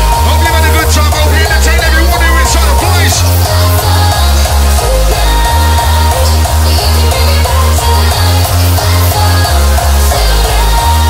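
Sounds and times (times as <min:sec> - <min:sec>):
sustained synth notes: 0:00.0 - 0:05.8
happy hardcore dance music: 0:00.0 - 0:11.0.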